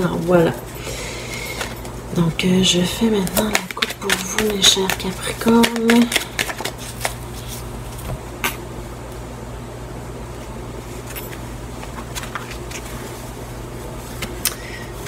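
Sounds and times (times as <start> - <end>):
low room hum: 0.0 - 15.0
cards clicking: 3.2 - 7.2.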